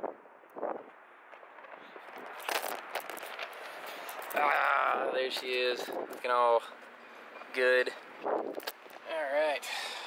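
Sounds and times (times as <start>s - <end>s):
loud crunching: 1.3s - 6.3s
camera handling rustling: 2.2s - 4.4s.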